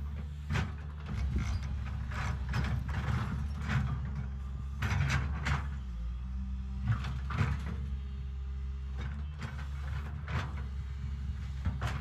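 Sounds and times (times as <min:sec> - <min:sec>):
excavator diesel engine running: 0:00.0 - 0:12.0.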